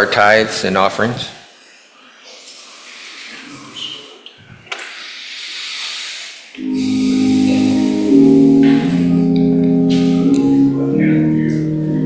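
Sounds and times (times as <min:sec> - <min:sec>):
steady hiss: 0:04.8 - 0:09.4
sustained keyboard chords: 0:06.6 - 0:12.0.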